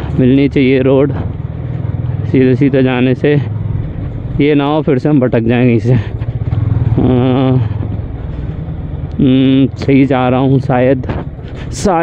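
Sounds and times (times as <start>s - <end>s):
man's voice: 0.0s - 1.3s, 4.4s - 6.2s, 6.9s - 7.8s, 9.2s - 12.0s
motorcycle engine low hum: 0.0s - 12.0s.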